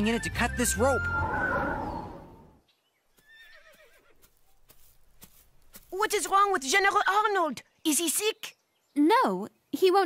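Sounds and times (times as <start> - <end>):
horse whinny: 1.0 - 2.6, 3.2 - 4.1
hoof clops: 3.2 - 6.3.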